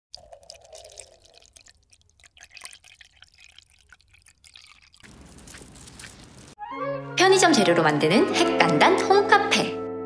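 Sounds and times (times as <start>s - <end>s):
milk dripping and popping: 0.1s - 6.4s.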